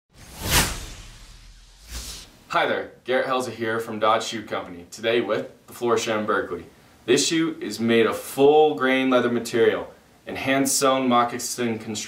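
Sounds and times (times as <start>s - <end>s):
whoosh sound effect: 0.1s - 2.4s.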